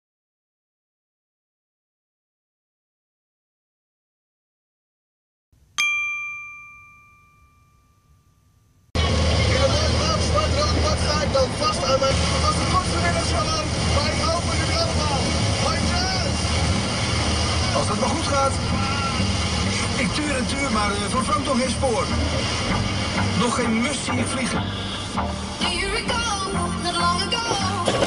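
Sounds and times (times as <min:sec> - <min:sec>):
bright chime ringing: 0:05.8 - 0:08.8
vehicle road and engine noise: 0:09.0 - 0:28.0.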